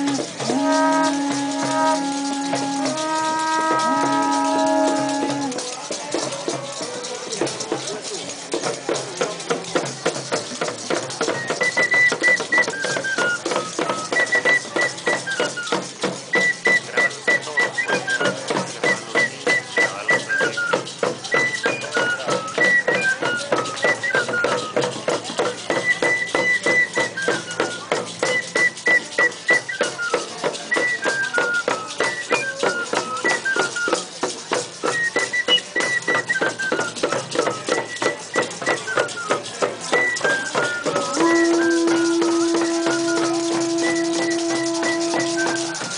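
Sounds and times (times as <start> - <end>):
hand drum beat: 0.0 - 45.9
maracas: 0.0 - 45.9.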